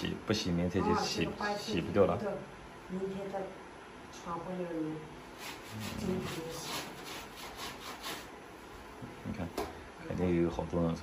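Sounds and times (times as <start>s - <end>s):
soapy garment scrubbed on tiles: 5.3s - 8.3s.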